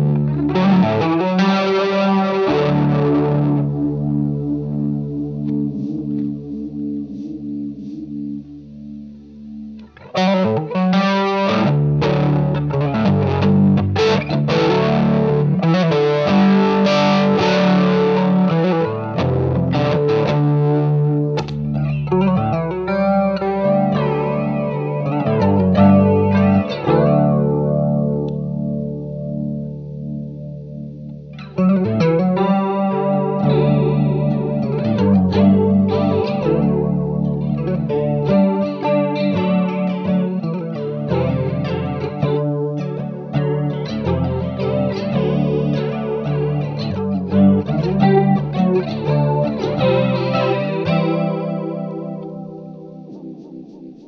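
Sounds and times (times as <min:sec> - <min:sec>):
electric guitar with flanger: 0:00.0 - 0:54.0.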